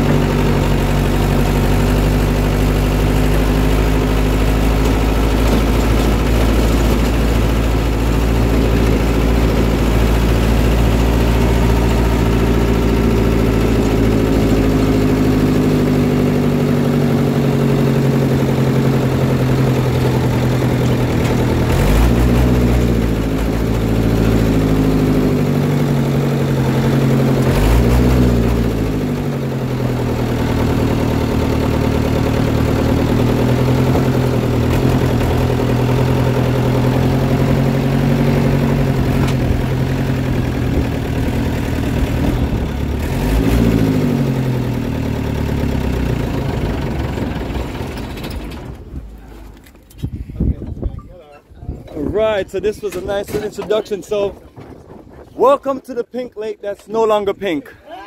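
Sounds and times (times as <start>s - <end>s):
vehicle engine running while driving: 0.0s - 50.1s.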